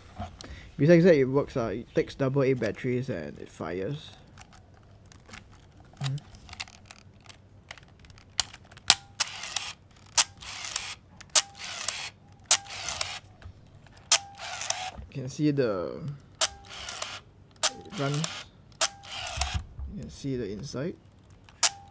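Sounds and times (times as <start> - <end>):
camera shutter clicks: 8.4 - 13.3, 14.1 - 15.0, 16.4 - 19.6, 21.5 - 21.9
camera motor drive whir: 8.9 - 13.3, 14.0 - 15.0, 16.4 - 19.7, 21.6 - 21.9.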